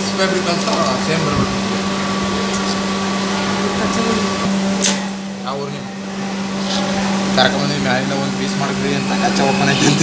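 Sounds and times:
sewing machine humming and whining: 5.5s - 10.0s.

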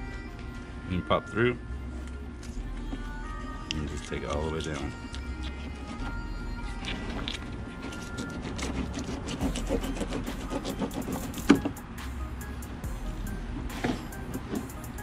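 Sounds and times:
background music: 0.0s - 15.0s
low steady hum: 0.0s - 15.0s
knife cutting fish: 5.1s - 11.8s.

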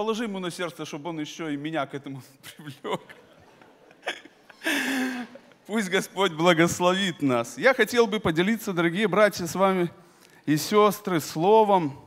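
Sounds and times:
man laughing into microphone: 2.8s - 5.7s.

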